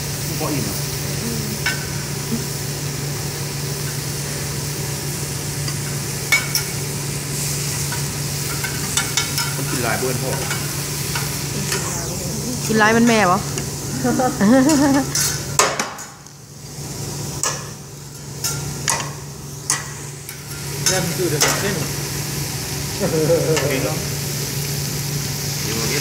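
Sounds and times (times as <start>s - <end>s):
steady low hum: 0.0s - 15.6s
vegetables sizzling on griddle: 0.0s - 26.0s.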